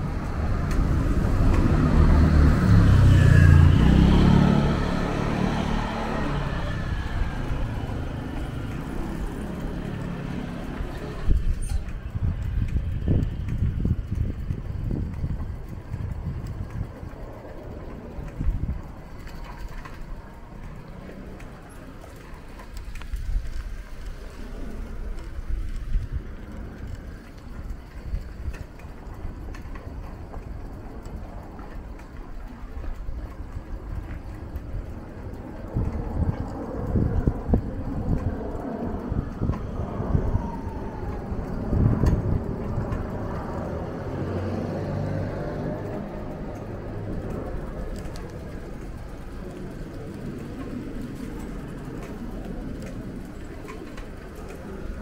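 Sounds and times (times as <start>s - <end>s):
faint traffic: 0.0s - 55.0s
low street rumbling: 0.0s - 55.0s.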